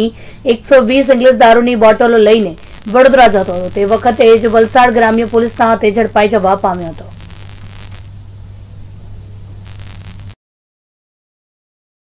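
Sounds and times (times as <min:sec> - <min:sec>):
low electrical hum: 0:00.0 - 0:10.4
steady hiss: 0:00.0 - 0:10.4.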